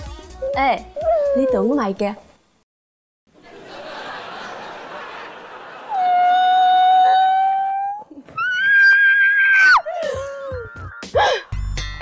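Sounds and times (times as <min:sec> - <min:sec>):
high wailing cry: 0:05.9 - 0:11.3.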